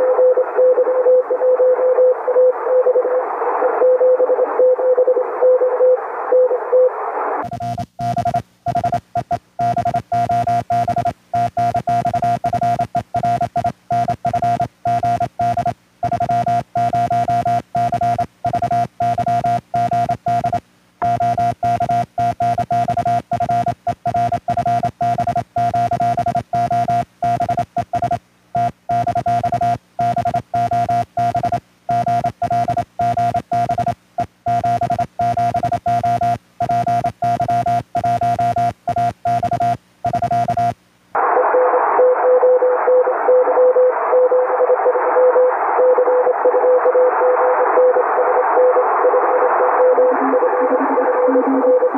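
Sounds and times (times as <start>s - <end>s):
morse code tone: 7.5s - 40.8s.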